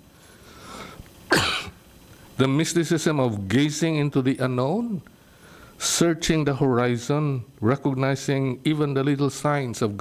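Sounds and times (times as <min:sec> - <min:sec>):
man coughing: 0:01.3 - 0:01.8.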